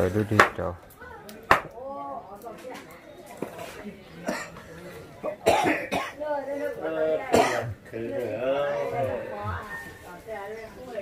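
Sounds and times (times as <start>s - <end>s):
man coughing: 5.4s - 6.2s, 7.3s - 7.7s.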